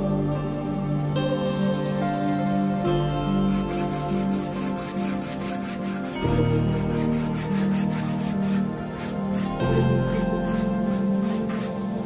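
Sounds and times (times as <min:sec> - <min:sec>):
background music: 0:00.0 - 0:12.0
paintbrush scratching on canvas: 0:03.5 - 0:12.0.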